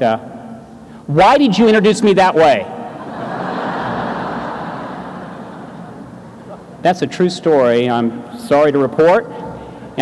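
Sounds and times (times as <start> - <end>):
large audience laughing: 2.8 - 6.8.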